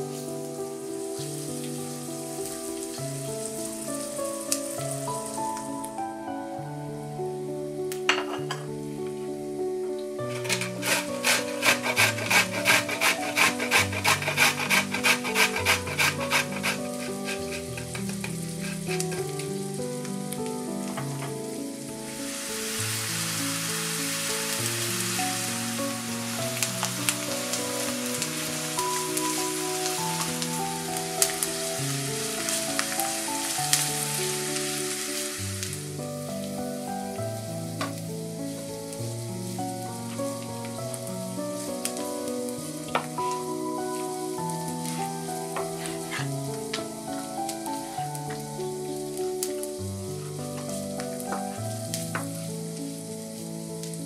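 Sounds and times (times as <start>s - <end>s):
vegetables sizzling in oil: 0.0s - 6.1s, 7.0s - 54.0s
background music: 0.0s - 54.0s
carrot scraping on grater: 10.3s - 19.2s.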